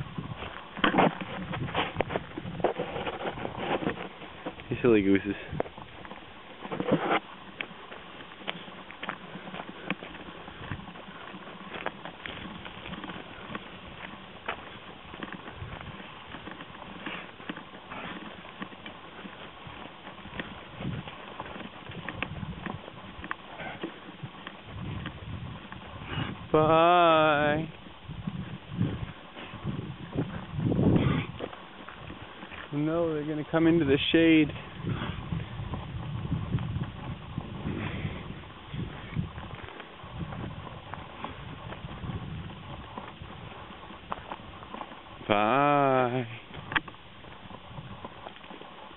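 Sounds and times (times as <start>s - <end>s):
cattle hoofbeats trotting: 0.0s - 48.9s
footsteps on muddy gravel: 0.0s - 48.9s.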